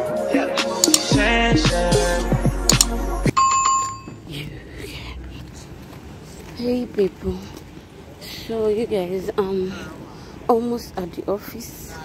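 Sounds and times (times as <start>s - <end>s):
music: 0.0s - 3.3s.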